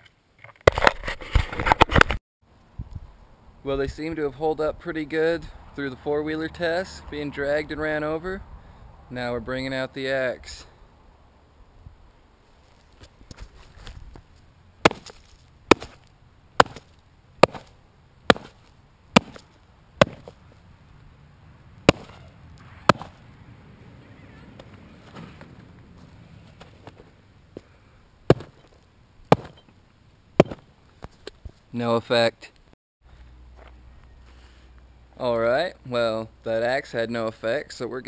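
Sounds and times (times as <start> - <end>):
axe chopping onto shoes: 14.8 - 20.4, 21.8 - 22.3, 22.9 - 23.2, 28.3 - 28.7, 29.3 - 29.6, 30.4 - 30.7.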